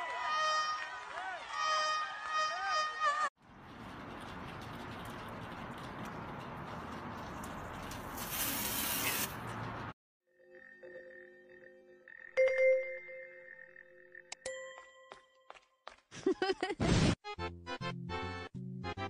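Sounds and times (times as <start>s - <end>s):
outdoor background noise: 3.4s - 10.0s
brief high hiss: 8.2s - 9.4s.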